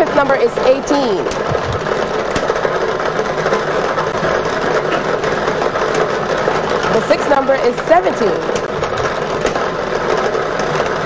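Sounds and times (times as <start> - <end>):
lottery balls rattling in machine: 0.0 - 11.0.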